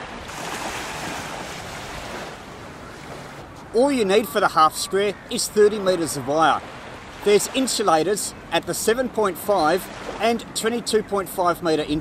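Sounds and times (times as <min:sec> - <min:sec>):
small waves on sandy beach: 0:00.0 - 0:04.6, 0:05.6 - 0:11.1.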